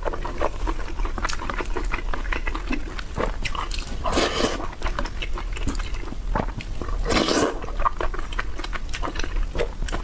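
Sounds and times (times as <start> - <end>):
close-up wet chewing: 0.0 - 10.0.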